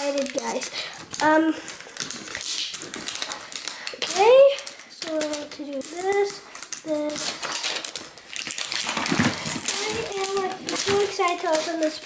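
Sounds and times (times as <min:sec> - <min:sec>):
fingernails peeling paper label: 0:01.2 - 0:12.0.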